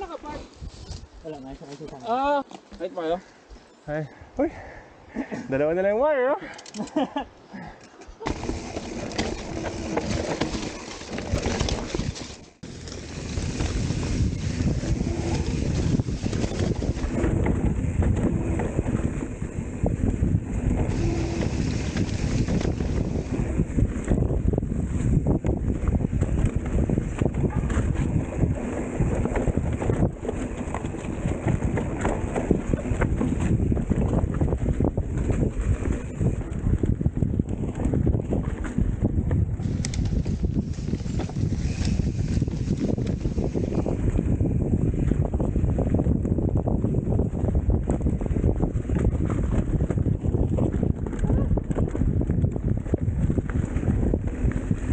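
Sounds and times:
bike rattling and knocking: 8.2s - 54.9s
wind buffeting microphone: 8.2s - 54.9s.

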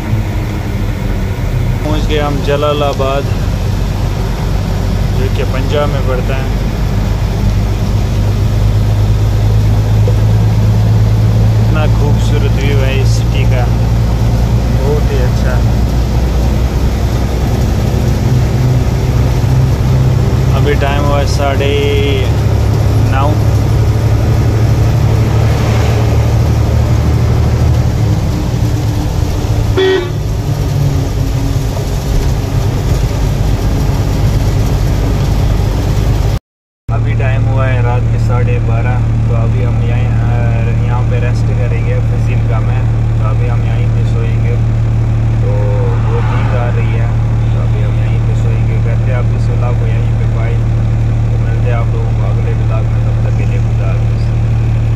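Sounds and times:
truck engine running: 0.0s - 54.9s
man talking: 1.8s - 3.4s, 5.1s - 6.6s, 11.6s - 13.9s, 14.6s - 15.7s, 20.5s - 23.6s, 36.9s - 44.7s, 45.4s - 50.6s, 51.3s - 54.4s
vehicle horn: 29.6s - 30.5s.

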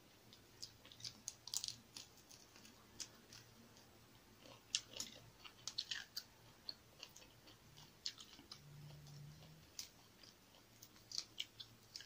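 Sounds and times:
person chewing food: 0.2s - 12.0s.

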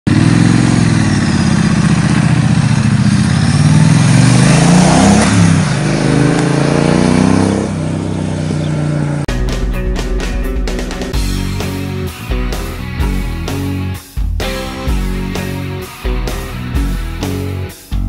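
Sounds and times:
motorcycle accelerating: 0.1s - 18.0s
rock music with guitar and drums: 9.3s - 18.0s.

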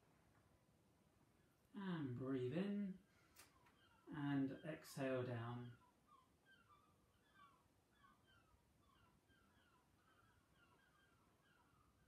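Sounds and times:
faint bird chirps: 3.3s - 12.0s.

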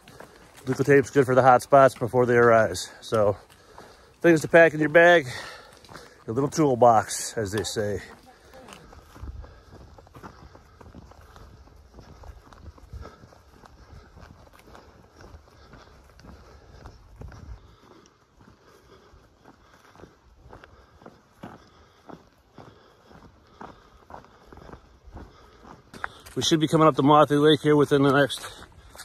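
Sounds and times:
footsteps on dirt trail: 0.0s - 29.0s.

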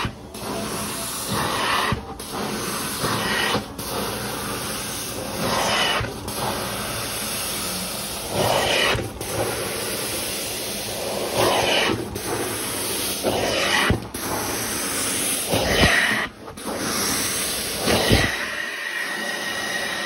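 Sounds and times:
carpet cleaner spraying and vacuuming: 0.0s - 20.0s.

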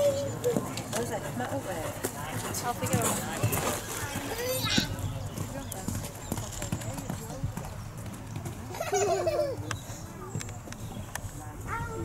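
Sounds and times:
people talking: 0.0s - 7.9s, 8.7s - 12.0s
horse hooves on sand: 0.3s - 12.0s.

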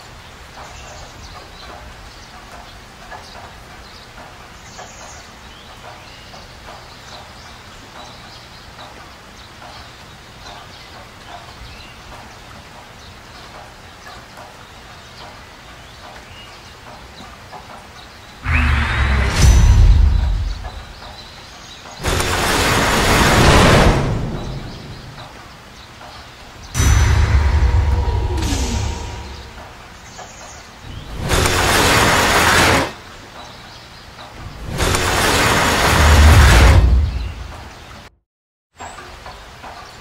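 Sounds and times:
cinematic boom with rising sweep: 26.8s - 29.7s.

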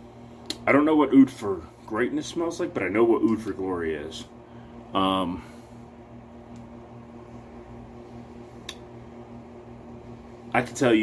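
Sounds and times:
low room hum: 0.0s - 11.0s
faint click: 8.6s - 8.9s.

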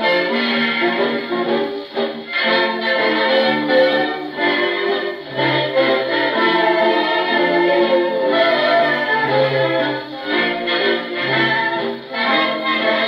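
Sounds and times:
old dance band record playing: 0.0s - 13.0s.

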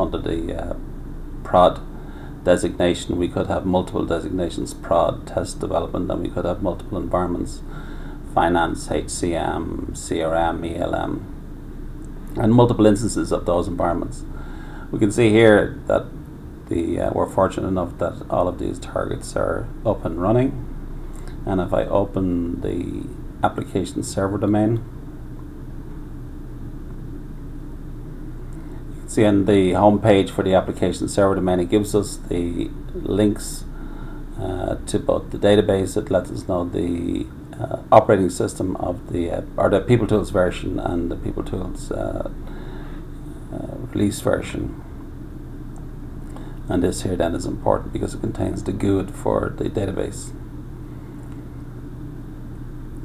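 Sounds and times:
electrical hum: 0.0s - 53.0s.

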